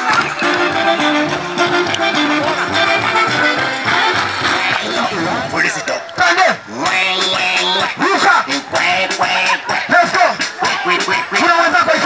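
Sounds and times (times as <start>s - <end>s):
upbeat dance music: 0.0s - 12.0s
man calling into microphone: 4.8s - 6.8s, 7.8s - 8.7s, 9.9s - 10.5s, 11.2s - 12.0s.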